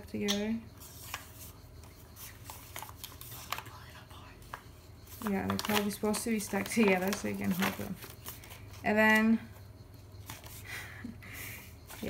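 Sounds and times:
paper pages rustling: 0:00.8 - 0:08.8, 0:10.2 - 0:10.7.

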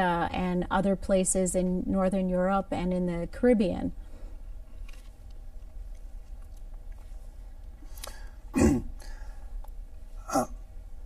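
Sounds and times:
person clearing throat: 0:08.6 - 0:09.0, 0:10.2 - 0:10.6.

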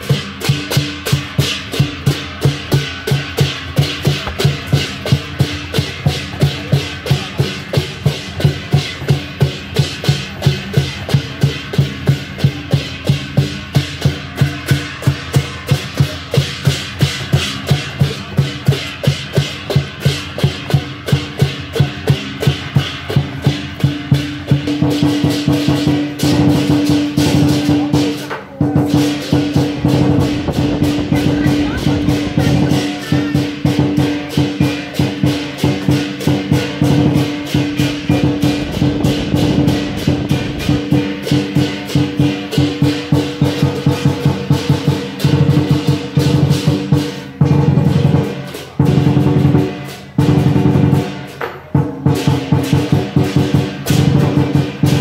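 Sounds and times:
cymbals and gong clashing: 0:00.0 - 0:55.0
drum beating: 0:00.0 - 0:55.0.

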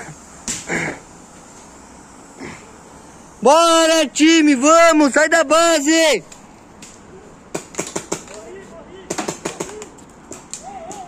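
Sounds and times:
distant shouting: 0:02.1 - 0:06.4, 0:08.4 - 0:11.0
paintball markers firing: 0:07.5 - 0:08.4.

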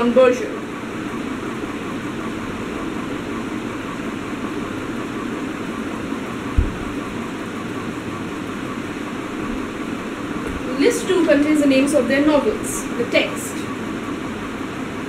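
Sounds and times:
room noise hiss: 0:00.0 - 0:15.0
low thump: 0:06.6 - 0:07.1.

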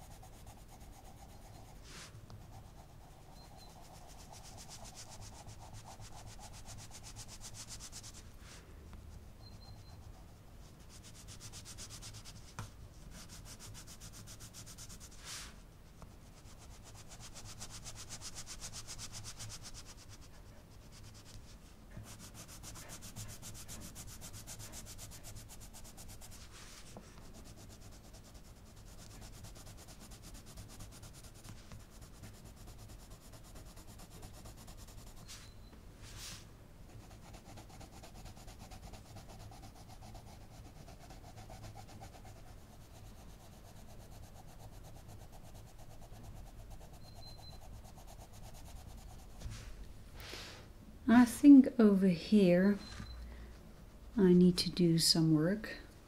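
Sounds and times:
pencil scratching on paper: 0:00.0 - 0:08.3, 0:09.5 - 0:35.4, 0:36.9 - 0:49.5.

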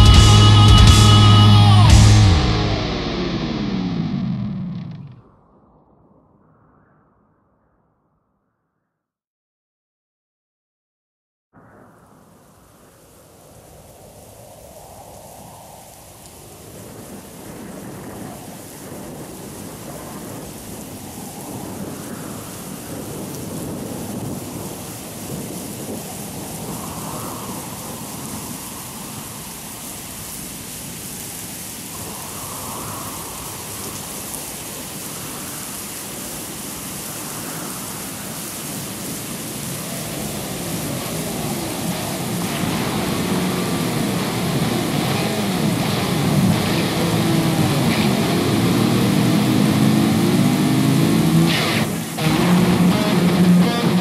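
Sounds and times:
rain: 0:00.0 - 0:05.4, 0:11.6 - 0:54.0
sharp cracks: 0:02.0 - 0:05.4, 0:41.2 - 0:54.0
rumbling thunder: 0:11.6 - 0:14.3, 0:15.8 - 0:29.6.

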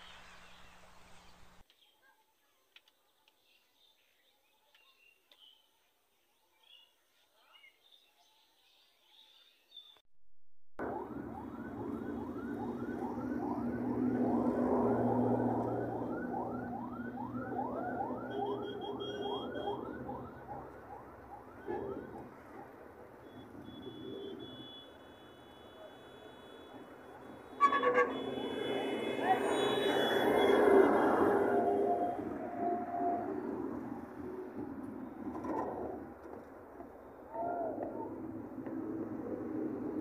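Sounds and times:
siren yelping: 0:10.8 - 0:34.1
engine drone: 0:10.8 - 0:35.7.

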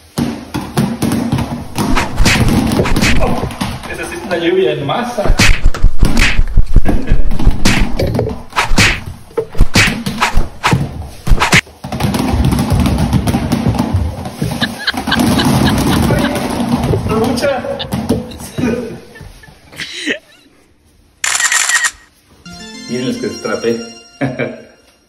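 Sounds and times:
foam balls bouncing on tiled floor: 0:00.0 - 0:04.6, 0:05.2 - 0:19.8.

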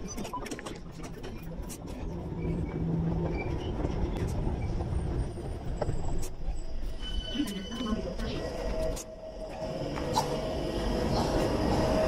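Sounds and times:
underground train rumble: 0:00.0 - 0:12.0.

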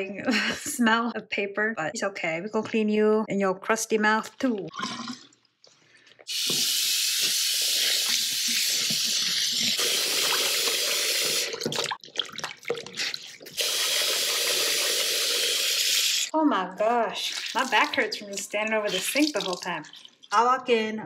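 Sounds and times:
tap water running into basin: 0:06.3 - 0:16.3, 0:17.2 - 0:20.6
water splashing: 0:06.4 - 0:14.9, 0:17.1 - 0:20.6.

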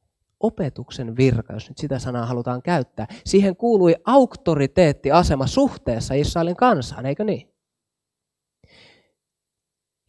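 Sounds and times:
man breathing softly: 0:08.6 - 0:09.2.

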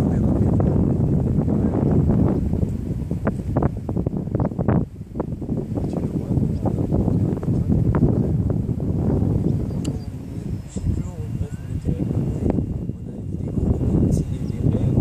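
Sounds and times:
wind buffeting microphone: 0:00.0 - 0:15.0.

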